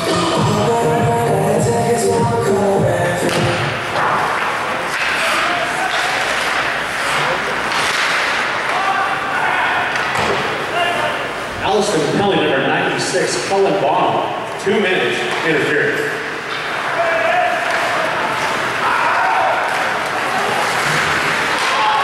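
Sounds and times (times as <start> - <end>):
music from arena speakers: 0.0 - 4.0
puck banging against boards: 3.3 - 9.2, 9.8 - 10.7, 19.6 - 22.0.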